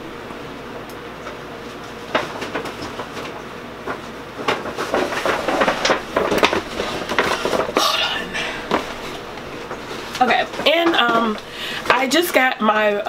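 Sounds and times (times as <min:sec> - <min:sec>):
rustling and clattering items: 0:01.6 - 0:13.0.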